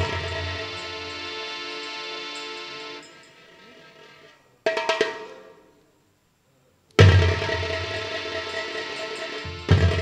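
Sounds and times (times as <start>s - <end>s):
band holding a chord: 0.0s - 3.9s, 7.2s - 10.0s.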